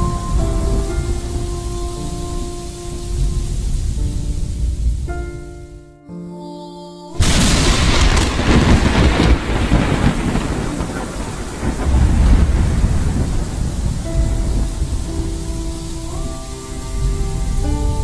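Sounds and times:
rain hiss: 0.0s - 5.1s, 7.2s - 18.0s
held music notes: 0.0s - 18.0s
thunder crack: 7.2s - 16.2s
thunder rumbling: 7.2s - 18.0s.

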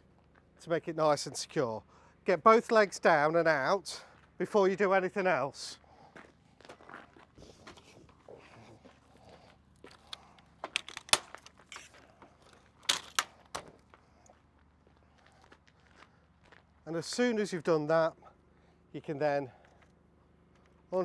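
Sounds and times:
footsteps on gravel: 5.8s - 16.9s
metal poles clicking and knocking: 10.6s - 13.7s.

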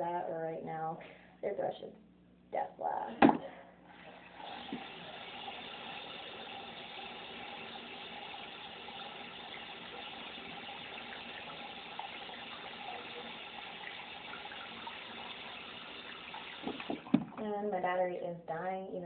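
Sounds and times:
tap water running: 3.9s - 18.0s.

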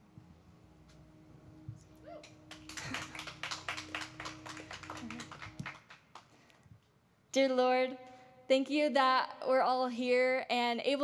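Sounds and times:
scattered applause: 2.1s - 6.5s.

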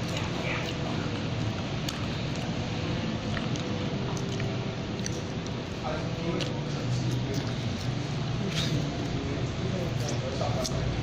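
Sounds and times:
restaurant dining room noise: 0.0s - 11.0s.

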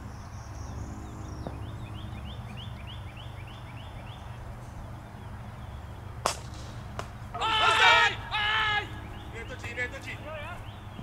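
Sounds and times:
bird chirping: 0.0s - 11.0s
low outdoor rumble: 0.0s - 11.0s
cricket bat hitting ball: 6.2s - 7.2s.

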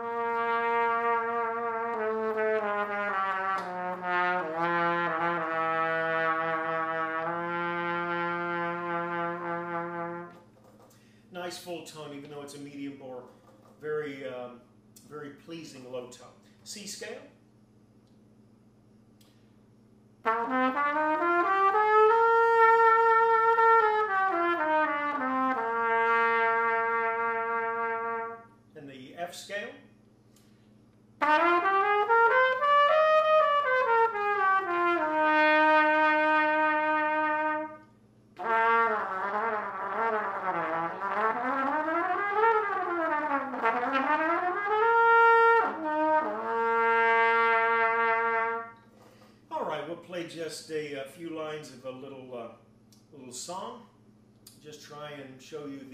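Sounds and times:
trumpet playing scales and runs: 0.0s - 10.6s, 20.2s - 28.6s, 31.2s - 48.9s.

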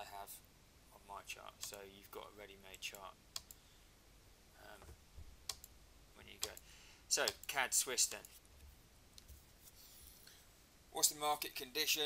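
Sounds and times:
sharp clicks: 3.4s - 3.6s, 6.4s - 6.6s.

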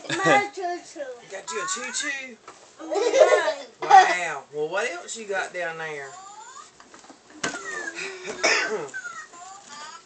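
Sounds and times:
person coughing: 8.0s - 8.9s.

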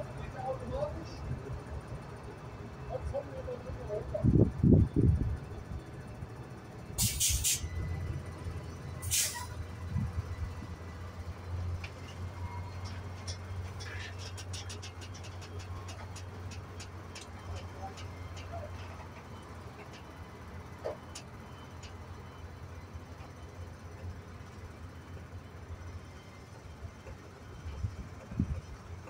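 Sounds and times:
diesel engine idling: 0.0s - 29.0s
air brake hisses: 7.0s - 7.7s, 9.0s - 9.6s.

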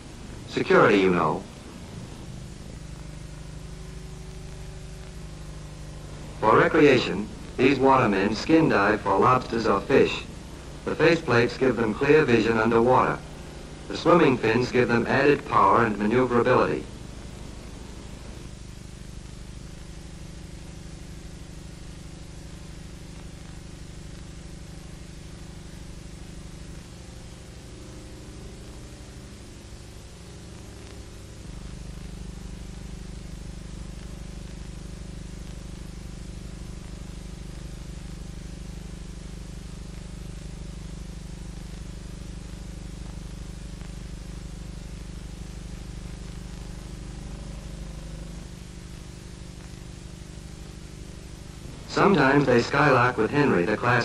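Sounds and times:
faint steady tone: 0.0s - 54.0s
low hum with hiss: 0.0s - 54.0s.

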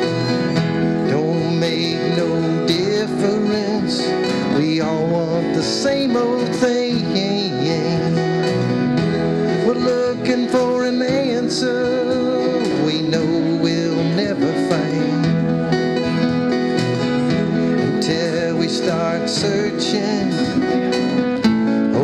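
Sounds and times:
acoustic folk band playing: 0.0s - 22.0s
cajon: 0.0s - 22.0s
strummed acoustic guitars: 0.0s - 22.0s
upright bass: 0.0s - 22.0s.

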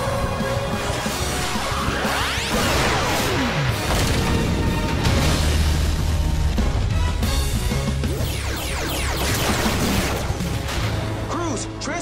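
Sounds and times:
background music: 0.0s - 12.0s.

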